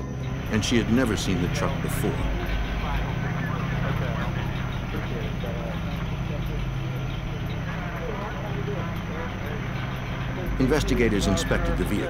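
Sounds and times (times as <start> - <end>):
faint indistinct voices: 0.0 - 12.0
vehicle engine idling: 0.0 - 12.0.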